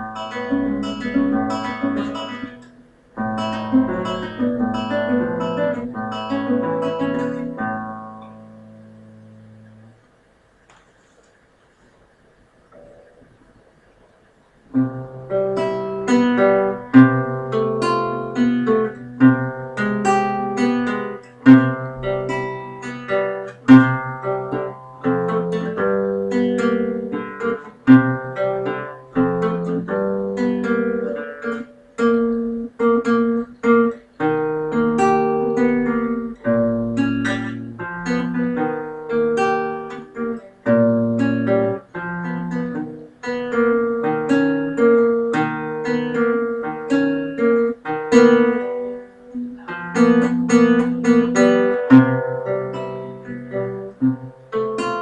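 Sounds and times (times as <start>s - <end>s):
classical guitar fingerstyle: 0.0s - 12.0s, 12.7s - 55.0s.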